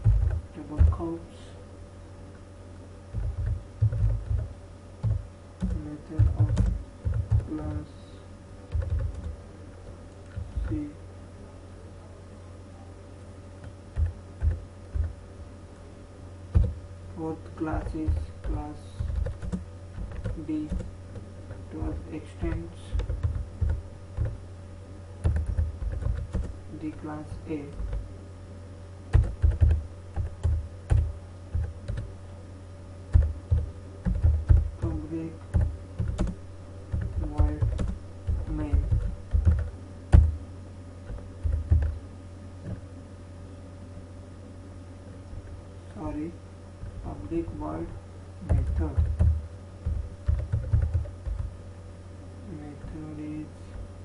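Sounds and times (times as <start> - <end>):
computer keyboard keystrokes: 0.0 - 0.9, 3.1 - 7.6, 8.7 - 9.3, 13.6 - 15.2, 16.5 - 16.8, 17.8 - 21.6, 22.4 - 24.4, 25.2 - 26.5, 29.1 - 32.1, 33.1 - 40.3, 41.1 - 42.0, 48.5 - 51.5
steady low hum: 0.0 - 54.0.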